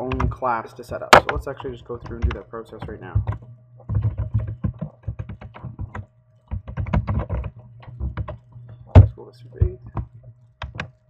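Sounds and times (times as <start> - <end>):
typing on computer keyboard: 2.0 - 8.4, 9.0 - 10.9.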